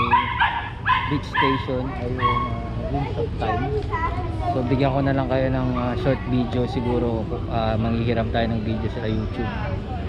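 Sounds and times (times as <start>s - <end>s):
man talking: 0.0s - 0.4s, 1.1s - 3.7s.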